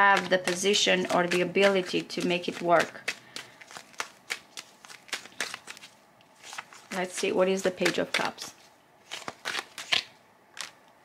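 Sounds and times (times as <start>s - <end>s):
cards clicking and flicking: 0.0s - 10.8s.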